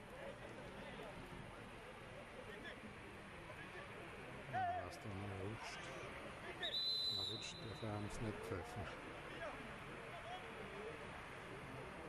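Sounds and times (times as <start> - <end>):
referee's whistle blast: 6.7 - 7.8.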